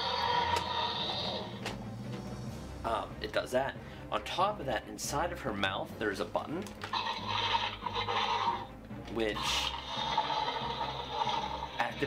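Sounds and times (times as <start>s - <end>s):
toy mechanism whirring: 6.8s - 8.7s.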